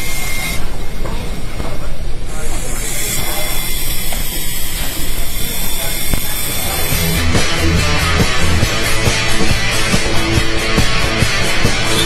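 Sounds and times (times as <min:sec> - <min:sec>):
model helicopter rotors whirring: 0:00.0 - 0:00.7, 0:02.3 - 0:07.3.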